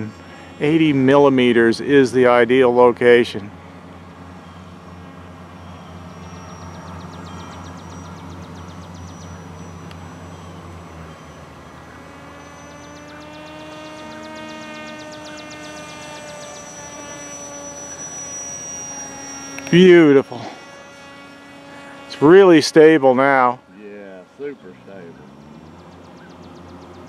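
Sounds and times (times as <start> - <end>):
low steady hum: 0.0 - 27.0
model plane motor whining: 0.0 - 27.0.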